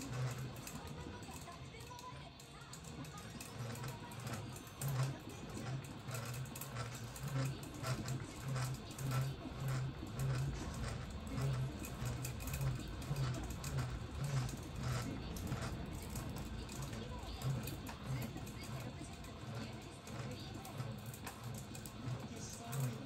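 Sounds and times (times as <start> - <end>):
fishing reel motor humming: 0.0 - 23.0
light clicking of reel: 0.0 - 23.0.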